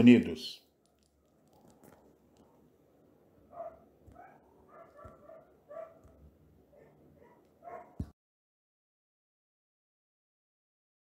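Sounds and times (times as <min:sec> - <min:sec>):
dog barking faintly: 0:03.5 - 0:08.2.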